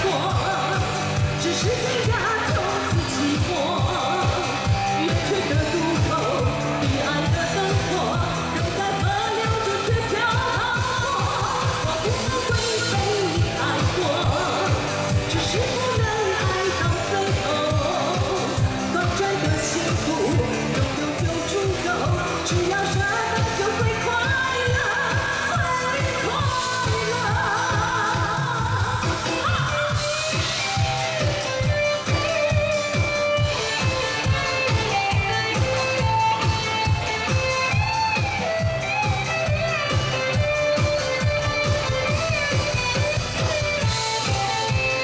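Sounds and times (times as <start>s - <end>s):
live pop music: 0.0s - 45.0s
steady kick-drum beat: 0.0s - 45.0s
woman singing: 0.0s - 45.0s.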